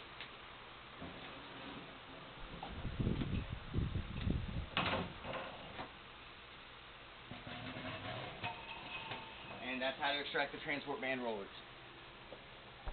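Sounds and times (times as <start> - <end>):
roller rubbing and knocking on frame: 1.0 - 3.4, 7.3 - 9.8.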